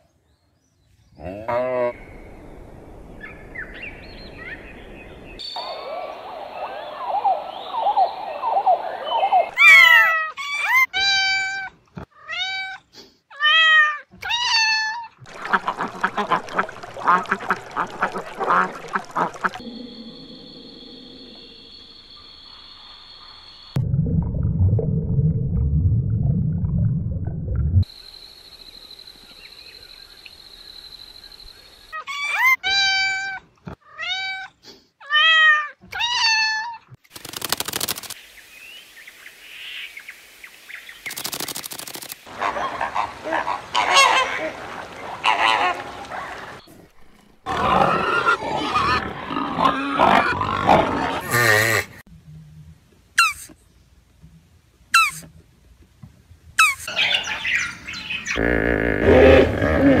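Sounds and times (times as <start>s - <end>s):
flamingos honking: 15.3s - 19.6s, 42.3s - 46.6s
high arching animal calls: 53.2s - 53.6s, 55.0s - 55.3s, 56.6s - 60.0s
low hippo calls: 58.3s - 60.0s.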